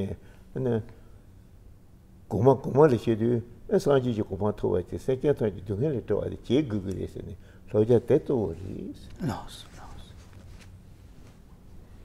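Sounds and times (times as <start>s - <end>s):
man speaking: 2.3s - 10.2s.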